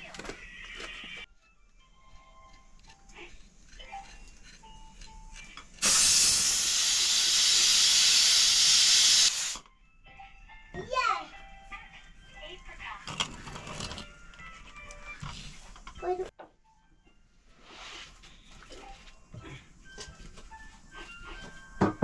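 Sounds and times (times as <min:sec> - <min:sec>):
escaping steam hissing: 0:05.8 - 0:09.6.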